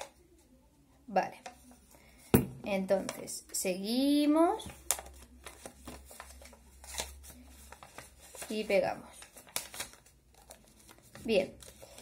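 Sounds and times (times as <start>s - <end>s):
paper rustling and crinkling: 4.6s - 12.0s.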